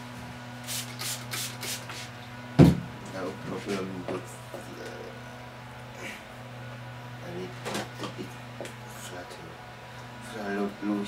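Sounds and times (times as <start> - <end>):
spray bottle hissing sprays: 0.6 - 2.1.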